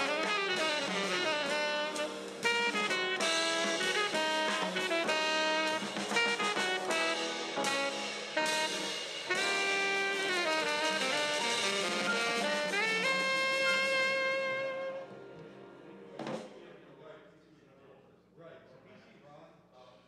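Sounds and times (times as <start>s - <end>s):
live jazz quartet: 0.0s - 16.6s.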